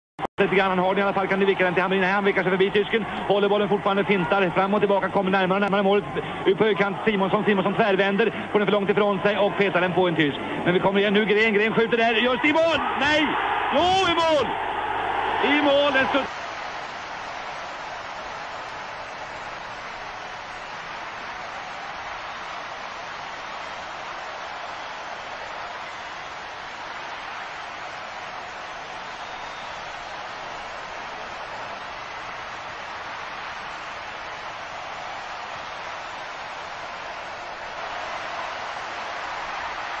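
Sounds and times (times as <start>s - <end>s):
stadium crowd cheering: 0.4s - 40.0s.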